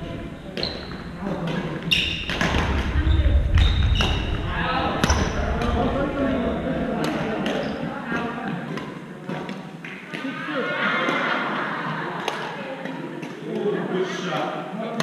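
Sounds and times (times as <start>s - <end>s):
rackets striking shuttlecocks: 0.6s - 4.4s, 7.0s - 10.3s.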